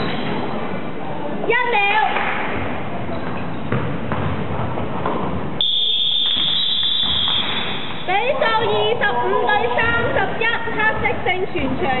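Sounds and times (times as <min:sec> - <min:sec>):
basketball thudding: 0:03.2 - 0:05.5.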